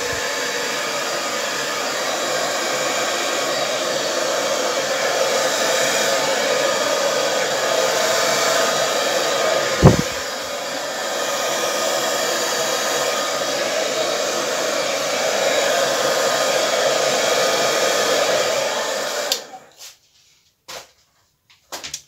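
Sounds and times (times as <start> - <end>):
hair dryer running: 0.0 - 19.7.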